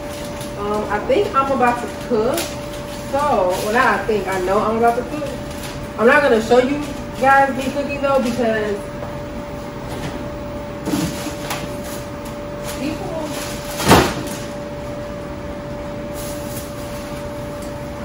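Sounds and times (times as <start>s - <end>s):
steady refrigerator hum: 0.0s - 18.0s.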